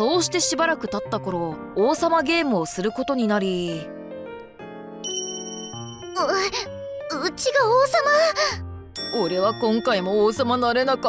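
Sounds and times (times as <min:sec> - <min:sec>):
background music: 0:00.0 - 0:11.0
bell-like chime: 0:05.0 - 0:06.9, 0:09.0 - 0:10.5.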